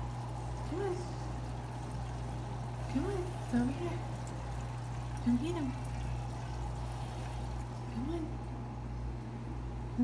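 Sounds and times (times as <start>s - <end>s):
water trickling: 0.0s - 8.6s
low filter hum: 0.0s - 10.0s.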